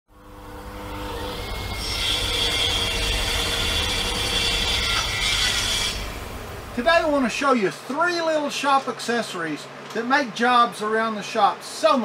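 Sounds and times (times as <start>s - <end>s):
woodworking power tool running: 0.1s - 7.4s.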